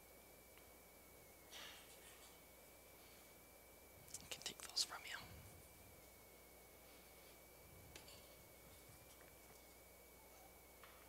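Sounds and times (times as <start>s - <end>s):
person whispering: 4.1s - 5.5s.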